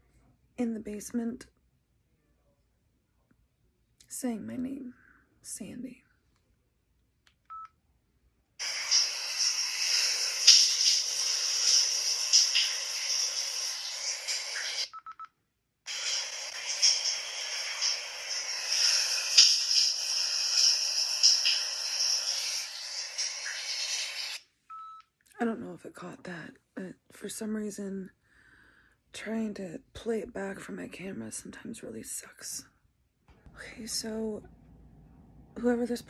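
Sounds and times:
recording hiss: 8.6 - 14.9, 15.9 - 24.4.

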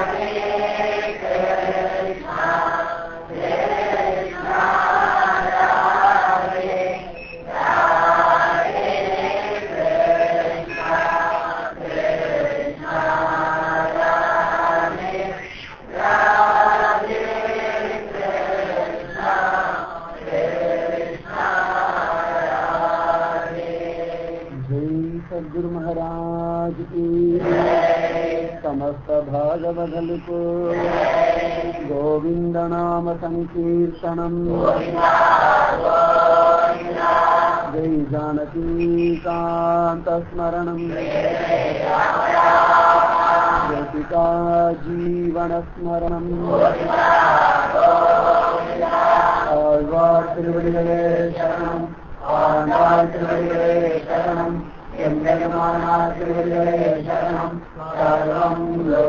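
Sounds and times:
voices chanting: 0.0 - 59.0.

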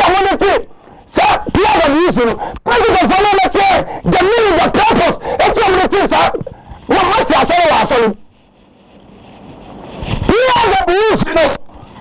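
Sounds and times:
man speaking emphatically: 0.0 - 8.2, 10.3 - 11.7.

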